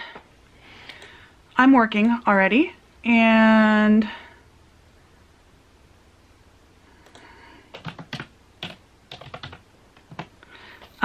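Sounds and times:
computer keyboard typing: 7.0 - 11.0.

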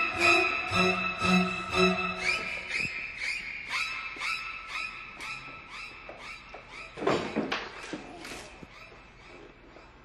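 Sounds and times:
faint string music: 0.0 - 2.6
high squeaks falling in pitch: 0.0 - 7.3.

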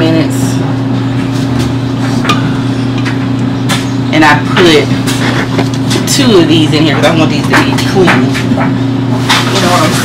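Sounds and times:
clothes dryer humming: 0.0 - 10.0.

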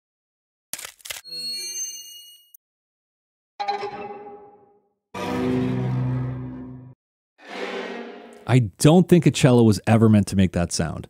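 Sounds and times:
creepy cello effects: 3.6 - 8.6.

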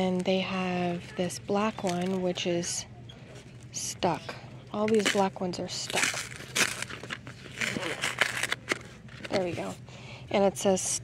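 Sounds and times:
notebooks scraping and rustling: 5.9 - 9.8.

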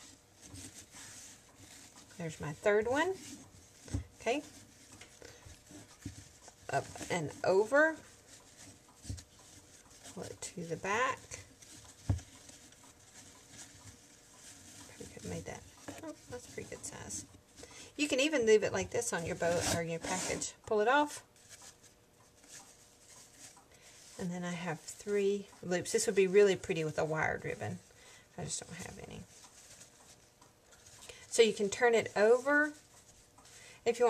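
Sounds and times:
fabric ribbon rustling: 0.0 - 34.0.

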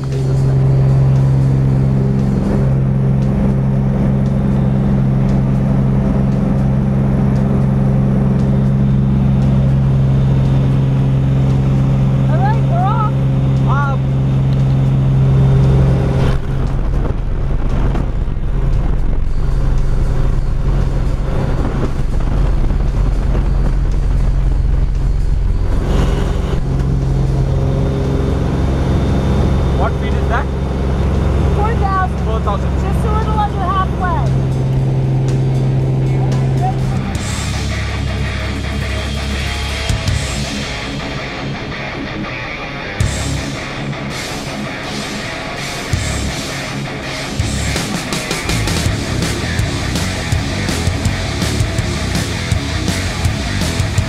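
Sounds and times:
propeller airplane engine drone: 0.0 - 54.0.

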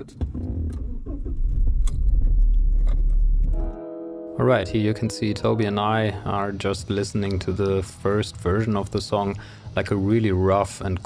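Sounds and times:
car engine starting and running: 0.0 - 3.6
music with held notes: 3.4 - 8.8.

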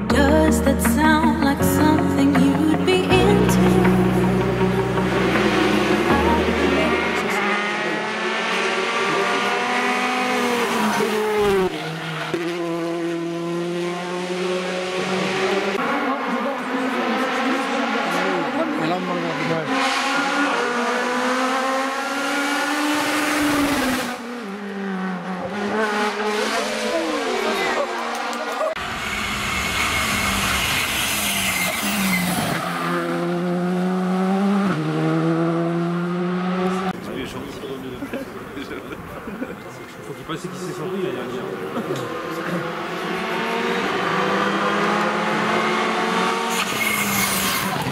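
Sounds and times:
rally car engines revving: 2.3 - 47.9.

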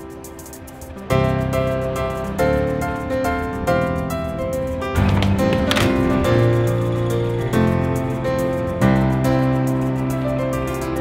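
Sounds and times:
solo piano music: 0.0 - 11.0.

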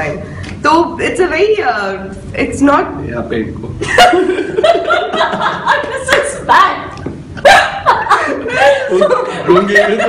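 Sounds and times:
group of people laughing: 3.8 - 6.4, 7.4 - 10.0.

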